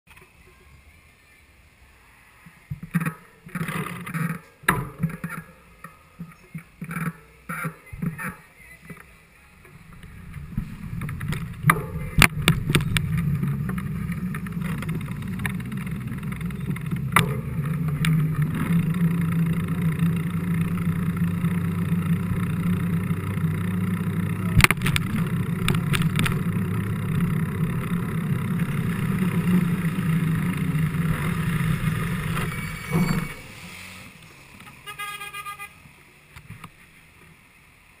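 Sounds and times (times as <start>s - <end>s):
bike tyre and frame rumble: 2.5s - 8.4s, 9.6s - 34.8s
bike clicks and rattles: 9.9s - 33.0s
horn toot: 34.8s - 35.8s.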